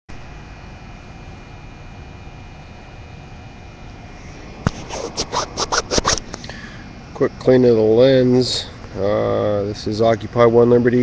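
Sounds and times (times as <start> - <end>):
rubbing against phone microphone: 4.6 - 6.4
sharp click: 4.6 - 6.5.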